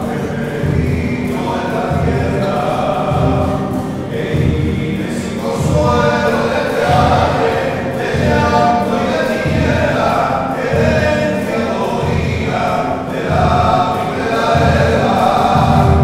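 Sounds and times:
choir singing a hymn: 0:00.0 - 0:16.0
strummed acoustic guitar: 0:00.0 - 0:16.0.

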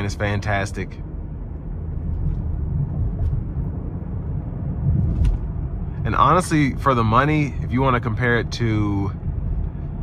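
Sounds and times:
car cabin engine and road rumble: 0:00.0 - 0:10.0.

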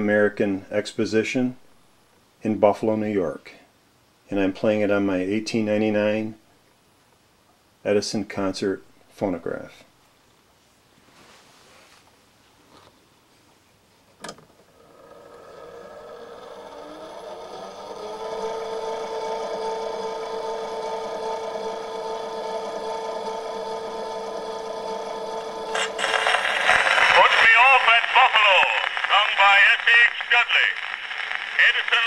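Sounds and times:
phonograph motor whine and hum: 0:14.2 - 0:32.0
record surface noise: 0:25.7 - 0:32.0
spoken announcement through horn: 0:26.0 - 0:30.9, 0:31.6 - 0:32.0.

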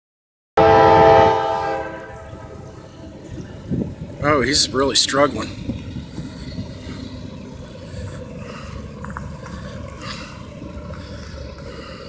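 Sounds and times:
locomotive air horn: 0:00.6 - 0:02.7
locomotive engine rumble: 0:00.6 - 0:12.0.

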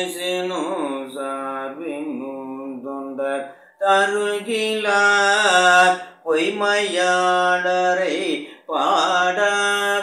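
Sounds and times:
man chanting melodically: 0:00.0 - 0:10.0.

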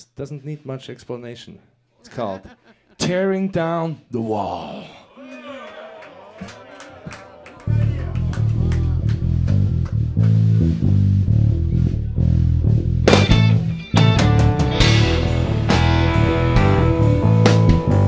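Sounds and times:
bass guitar riff: 0:07.7 - 0:18.0
bending electric guitar tones: 0:08.1 - 0:18.0
rock drums: 0:12.4 - 0:18.0.

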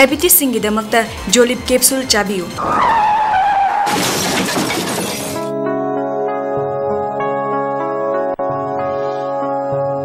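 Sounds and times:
car crash: 0:02.6 - 0:05.5
glass shattering: 0:03.8 - 0:05.4
soft music with held notes: 0:05.3 - 0:10.0.

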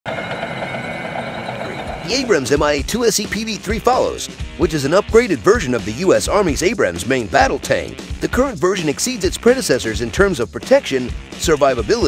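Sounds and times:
tank turbine engine whine: 0:00.1 - 0:02.6.

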